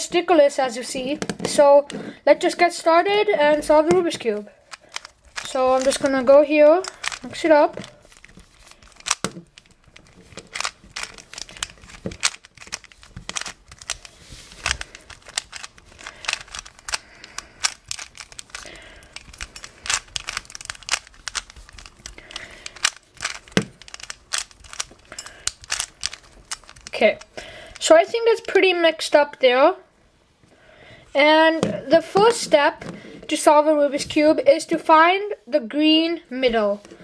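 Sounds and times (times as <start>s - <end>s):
plastic puzzle cube clicking: 3.5s - 28.5s.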